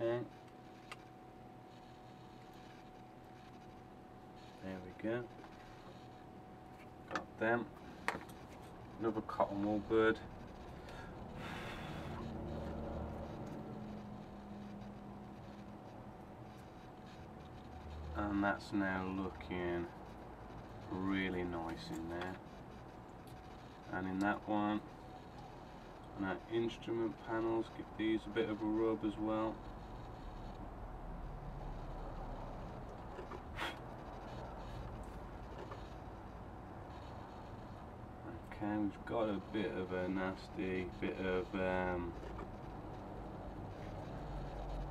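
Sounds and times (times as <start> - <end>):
steady low hum: 0.0 - 44.9.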